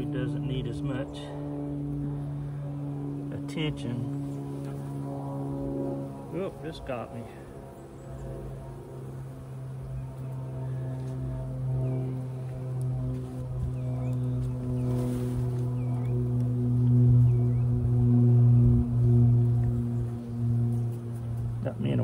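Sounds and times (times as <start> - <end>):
honeybees humming: 0.0 - 22.0.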